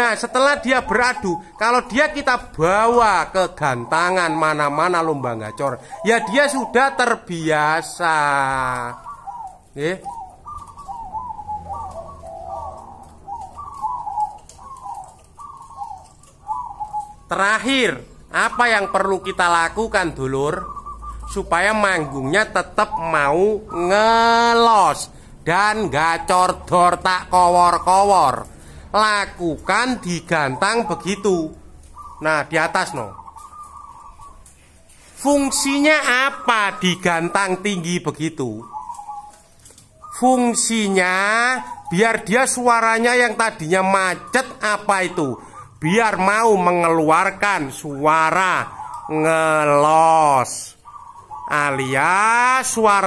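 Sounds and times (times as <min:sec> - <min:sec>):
doves cooing: 0:00.0 - 0:53.0.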